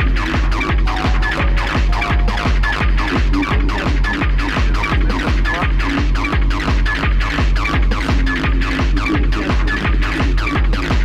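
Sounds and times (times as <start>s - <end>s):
dense synth lines: 0.0s - 11.0s
fast kick drum: 0.0s - 11.0s.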